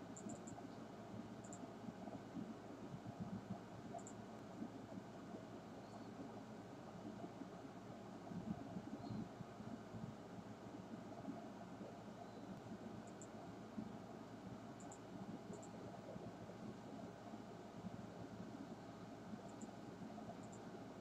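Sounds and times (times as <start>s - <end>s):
low hiss and rumble: 0.0s - 21.0s.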